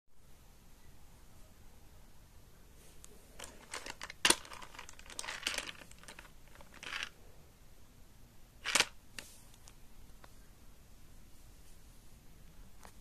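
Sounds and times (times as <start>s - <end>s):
rubbing handling sounds: 2.8s - 7.2s, 8.6s - 10.3s
plastic toy car clicks and knocks: 3.4s - 7.1s, 8.6s - 9.0s.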